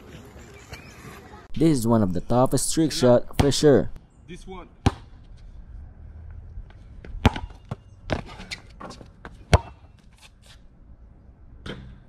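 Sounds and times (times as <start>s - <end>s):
basketball bouncing: 4.8s - 5.1s, 7.0s - 9.9s.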